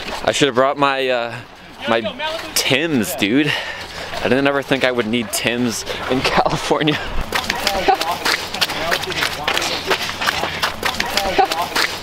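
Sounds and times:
footsteps on icy snow: 0:00.0 - 0:12.0.

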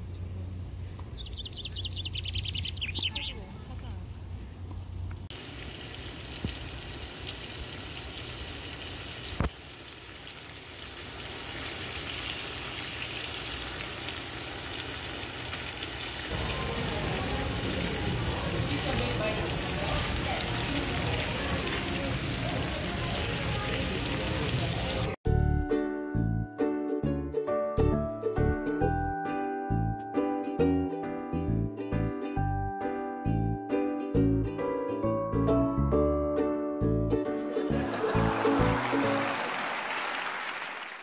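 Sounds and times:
open-air ambient noise: 0:00.0 - 0:25.2
broth bubbling and sizzling: 0:05.3 - 0:25.2
restaurant chatter: 0:16.3 - 0:25.2
background music: 0:25.3 - 0:39.3.

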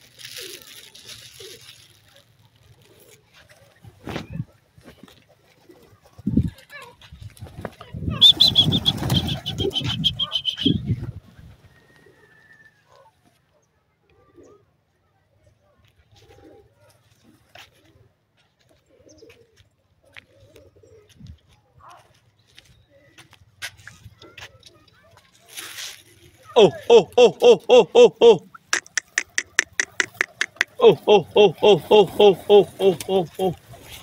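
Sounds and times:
pigeons cooing: 0:00.0 - 0:02.0, 0:02.6 - 0:06.3, 0:08.1 - 0:13.1, 0:16.1 - 0:21.4, 0:26.5 - 0:34.0.

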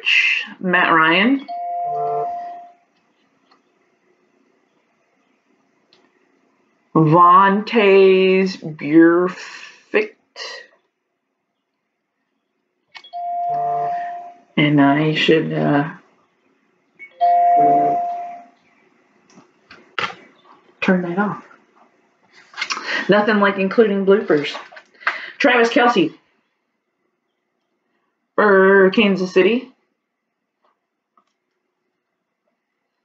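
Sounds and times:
phone notification chime: 0:01.5 - 0:02.7, 0:13.2 - 0:14.4, 0:17.2 - 0:18.4.

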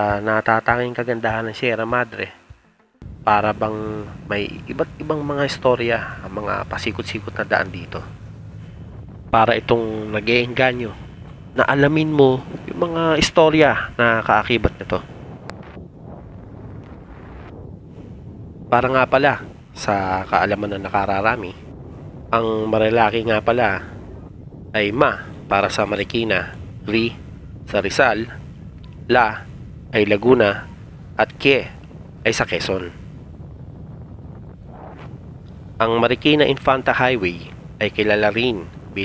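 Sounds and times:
wind rumbling on microphone: 0:03.0 - 0:39.0.

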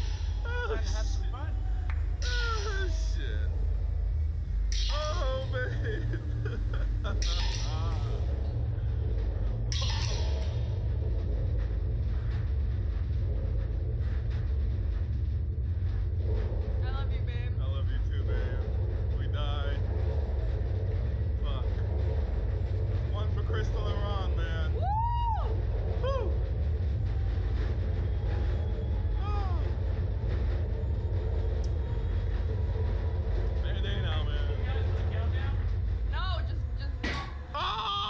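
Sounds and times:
steady low rumble: 0:00.0 - 0:38.0.

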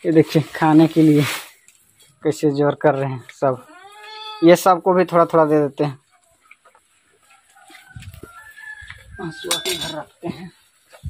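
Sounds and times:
rooster crowing: 0:07.5 - 0:10.0.

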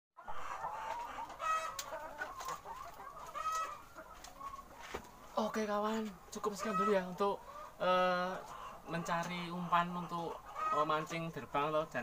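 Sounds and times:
hens clucking: 0:00.2 - 0:12.0
loud drawn-out hen calls: 0:00.2 - 0:12.0.

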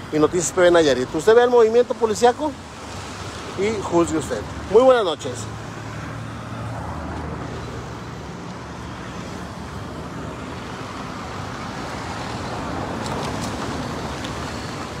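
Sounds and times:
street traffic: 0:00.0 - 0:15.0.

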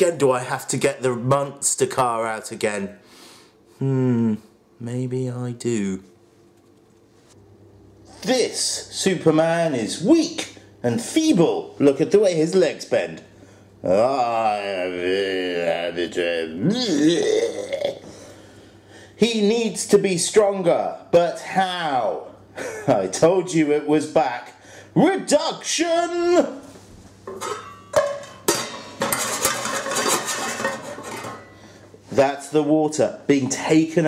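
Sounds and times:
metal pan lid clattering: 0:27.3 - 0:31.5.

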